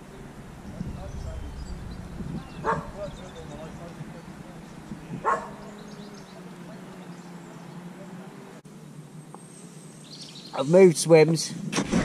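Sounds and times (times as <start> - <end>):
dog barking: 2.6 - 3.1, 5.2 - 5.7.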